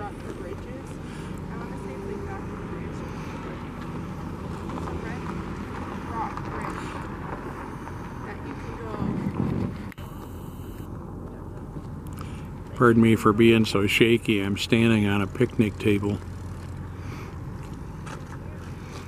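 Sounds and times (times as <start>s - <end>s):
outdoor background rumble: 0.0s - 19.0s.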